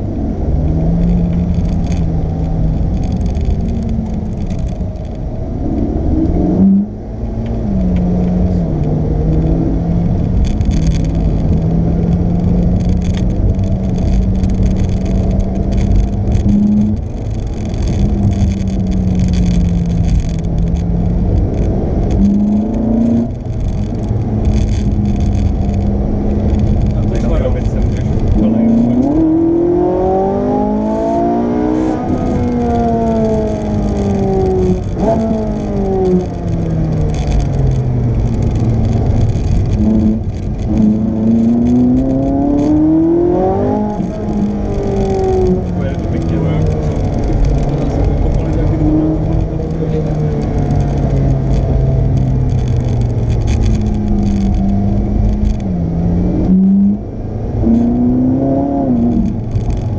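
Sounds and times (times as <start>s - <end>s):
car engine accelerating: 0.0s - 59.9s
road and wind noise: 0.0s - 59.9s.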